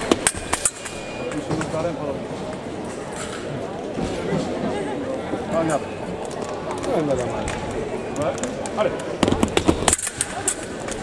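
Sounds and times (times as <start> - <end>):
hubbub of fencing hall: 0.0 - 11.0.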